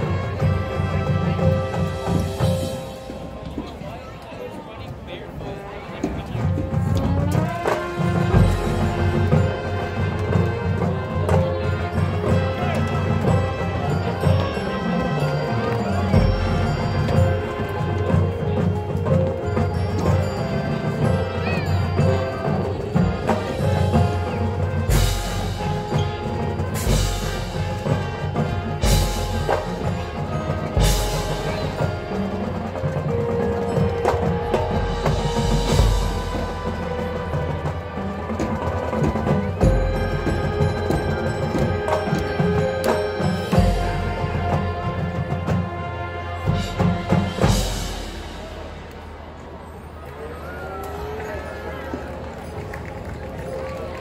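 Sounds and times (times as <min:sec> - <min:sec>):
mallet percussion: 0:00.0 - 0:04.2, 0:06.2 - 0:54.0
marching band playing: 0:00.0 - 0:54.0
loud low drums: 0:06.0 - 0:49.5.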